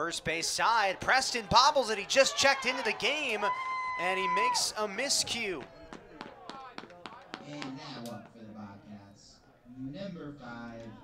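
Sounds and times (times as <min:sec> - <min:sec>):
sharp claps: 0:05.6 - 0:08.4.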